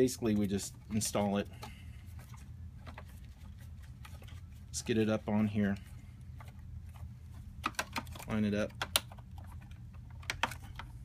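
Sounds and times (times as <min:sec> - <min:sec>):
steady low hum: 0:00.0 - 0:11.0
plastic parts clicking and knocking: 0:07.6 - 0:11.0.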